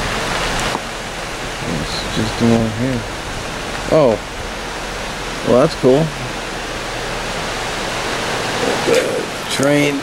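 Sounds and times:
road and wind noise inside car: 0.0 - 10.0.

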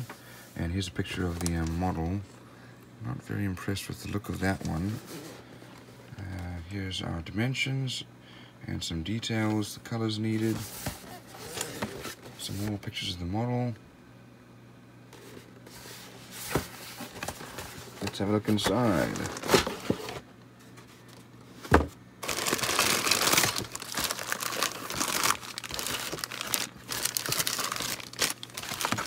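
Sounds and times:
low steady hum: 0.0 - 29.0
plastic bags crinkling: 17.1 - 20.1, 22.2 - 29.0.

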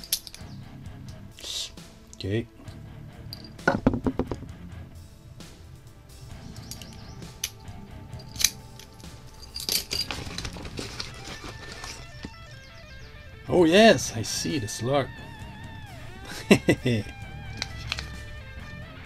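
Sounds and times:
keys and lock cylinders clinking: 0.0 - 0.5, 3.3 - 3.8, 6.5 - 12.4, 17.5 - 18.3
faint music: 0.0 - 19.0.

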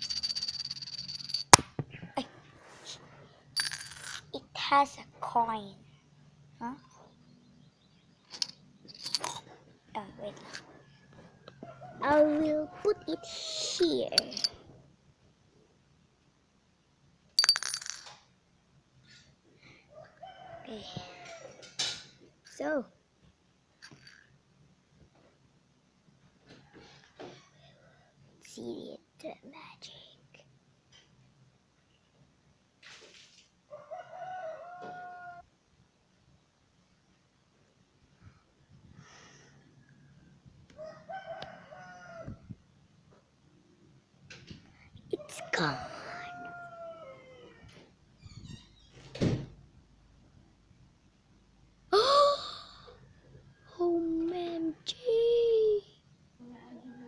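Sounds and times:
coin rattling in a glass: 0.0 - 1.6, 3.6 - 4.3, 8.3 - 9.4, 14.2 - 14.6, 17.4 - 18.2, 23.8 - 24.3
rooster crowing: 11.0 - 13.6, 20.0 - 21.6, 33.7 - 35.4, 40.8 - 42.4, 45.3 - 47.8.

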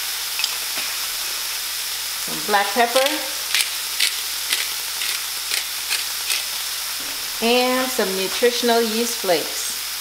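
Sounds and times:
tofu sizzling in a frying pan: 0.0 - 10.0.

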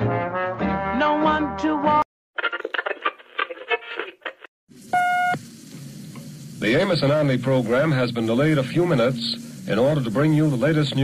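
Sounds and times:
song with brass backing: 0.0 - 2.0
old radio recording hiss: 2.4 - 11.0
steady beep: 5.0 - 5.4.

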